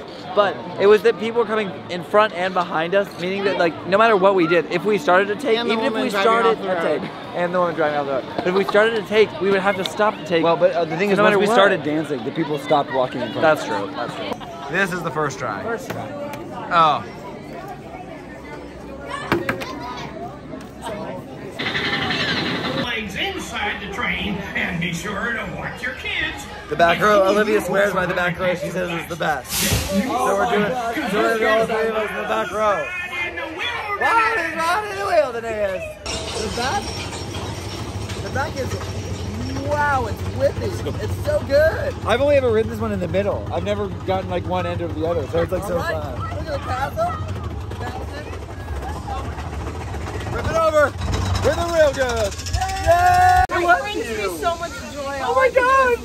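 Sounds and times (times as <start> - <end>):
background chatter of people: 0.0 - 56.0
roller coaster rumbling on track: 3.4 - 56.0.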